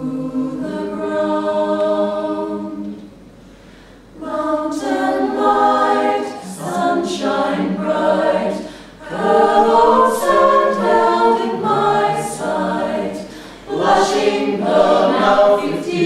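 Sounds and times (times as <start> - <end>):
choir singing in harmony: 0.0 - 3.2, 4.0 - 16.0.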